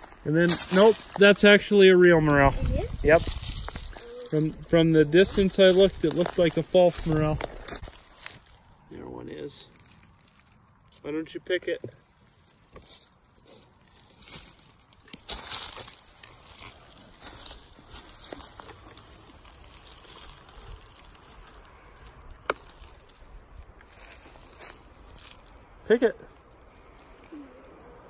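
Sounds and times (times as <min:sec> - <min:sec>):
dry leaves and twigs crackling: 0:00.0 - 0:28.0.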